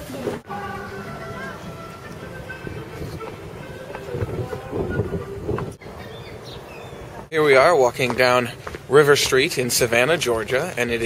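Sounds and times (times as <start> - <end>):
faint voices: 0.0 - 5.8
wind buffeting microphone: 2.4 - 7.3.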